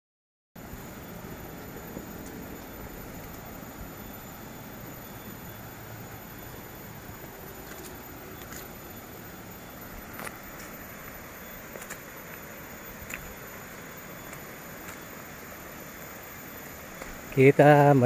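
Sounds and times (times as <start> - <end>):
faint high whine: 0.6 - 18.0
footsteps on dirt path: 7.0 - 18.0.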